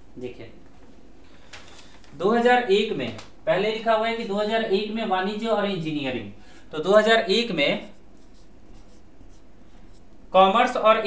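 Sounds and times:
marker pen writing on whiteboard: 0:07.6 - 0:10.1.

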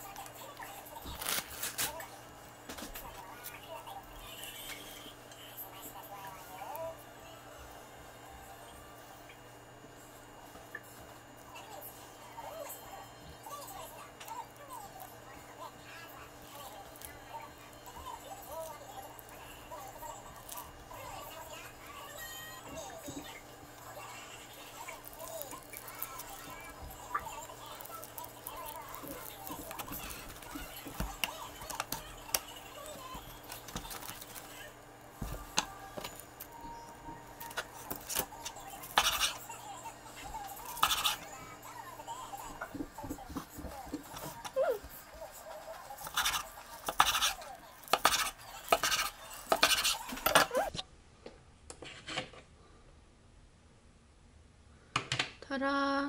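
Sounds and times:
knife slicing sushi: 0:37.4 - 0:39.5, 0:46.0 - 0:50.5.

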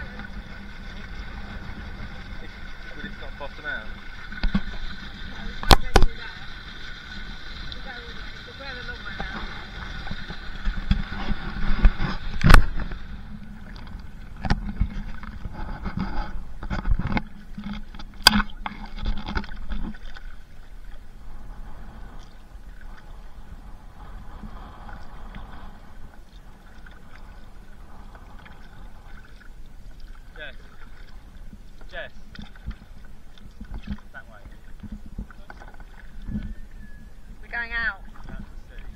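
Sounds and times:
water lapping: 0:00.0 - 0:38.9
water splashing around kayak: 0:00.0 - 0:38.9
knocks against hull: 0:04.3 - 0:06.4, 0:09.1 - 0:13.1, 0:13.7 - 0:20.2.

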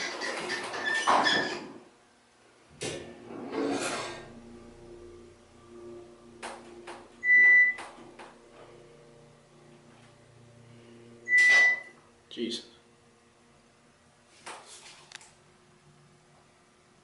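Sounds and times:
elevator starting with click and surge: 0:02.7 - 0:12.0
elevator pump motor humming: 0:02.7 - 0:17.0
short electronic beep: 0:07.2 - 0:07.8, 0:11.2 - 0:12.0.

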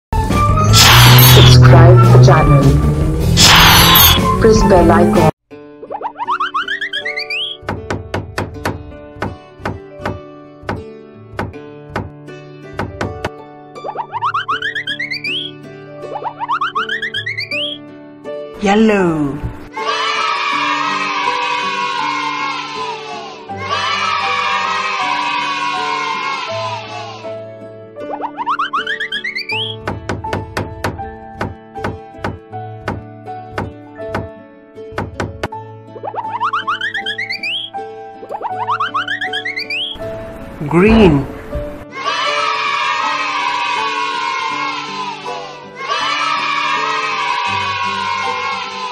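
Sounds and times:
children's background music: 0:00.2 - 0:48.9
cartoon rising note run: 0:00.5 - 0:04.7, 0:13.8 - 0:15.5, 0:16.1 - 0:17.8, 0:36.0 - 0:37.7, 0:38.3 - 0:40.0
quick cartoon knocks: 0:11.4 - 0:12.1, 0:34.9 - 0:35.6.

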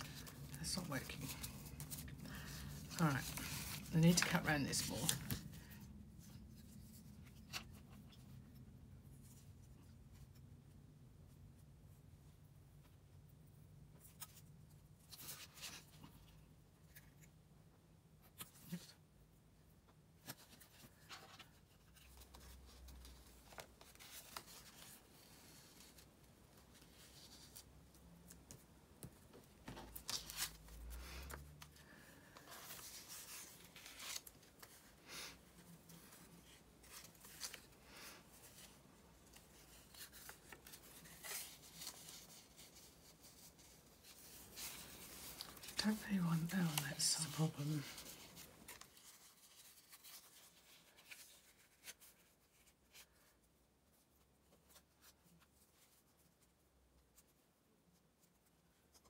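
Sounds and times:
paper rustling: 0:00.0 - 0:08.4, 0:20.2 - 0:56.4.

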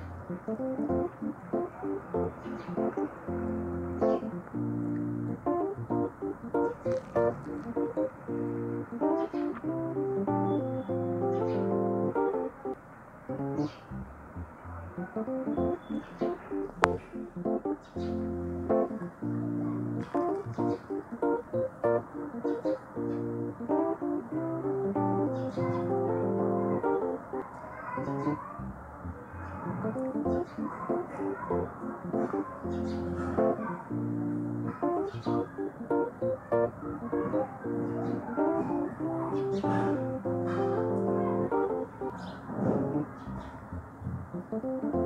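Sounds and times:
plucked guitar music: 0:00.0 - 0:12.7, 0:13.3 - 0:27.4, 0:29.7 - 0:42.1, 0:44.3 - 0:45.0.

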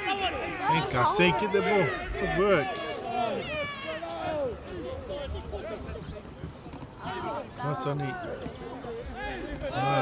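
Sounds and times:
people shouting: 0:00.0 - 0:05.0, 0:09.2 - 0:10.0.

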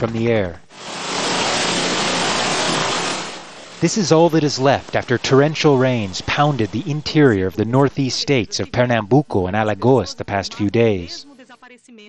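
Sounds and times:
floodwater rushing: 0:00.7 - 0:08.6.

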